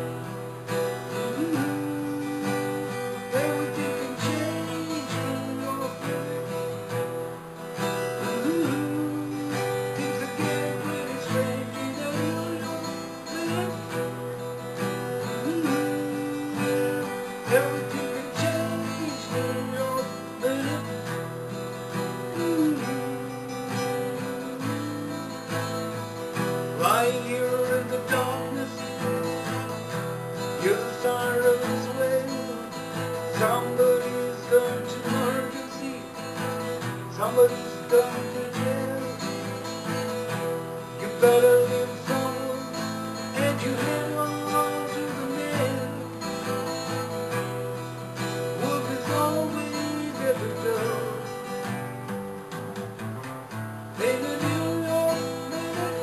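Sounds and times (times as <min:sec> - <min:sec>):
acoustic guitar playing: 0:00.0 - 0:56.0.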